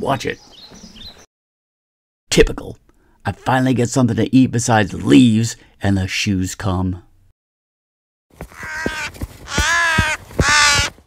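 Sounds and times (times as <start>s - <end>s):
crow cawing: 8.4s - 11.0s.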